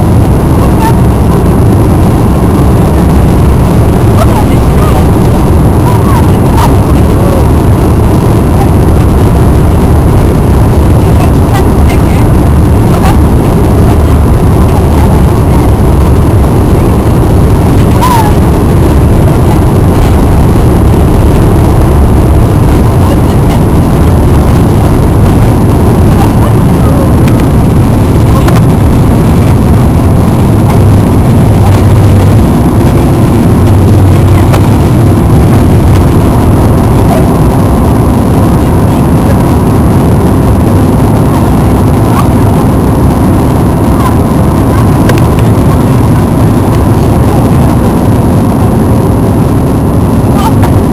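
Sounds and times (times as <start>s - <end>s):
jet engines roaring in cabin: 0.0s - 50.9s.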